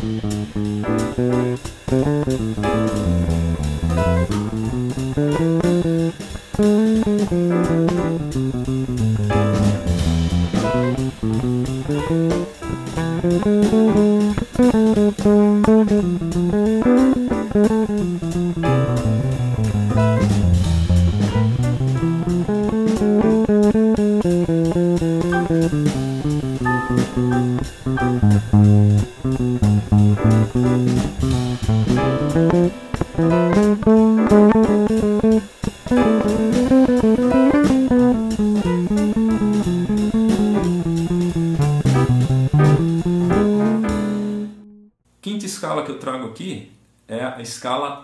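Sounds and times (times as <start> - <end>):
electric bass played fingerstyle: 0.0 - 44.9.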